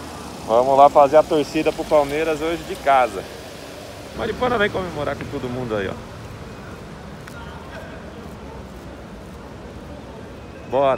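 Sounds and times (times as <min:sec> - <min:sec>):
distant crowd voices: 0:00.0 - 0:10.9
low traffic rumble: 0:00.0 - 0:10.9.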